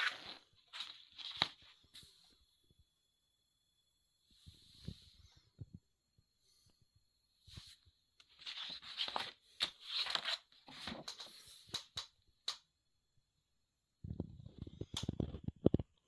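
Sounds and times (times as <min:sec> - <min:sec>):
paper rustling and crinkling: 0:00.0 - 0:01.9, 0:08.2 - 0:11.8.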